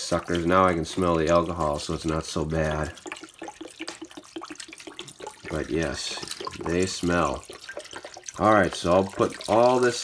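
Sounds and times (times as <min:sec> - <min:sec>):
jug glugging: 0:00.0 - 0:10.0
liquid pouring into a glass dish: 0:00.0 - 0:10.0.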